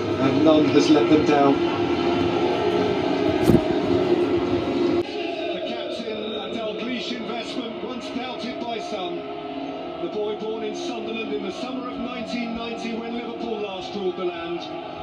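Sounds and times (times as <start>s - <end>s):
indistinct voices on television: 0.0s - 15.0s
music through television speaker: 0.0s - 15.0s.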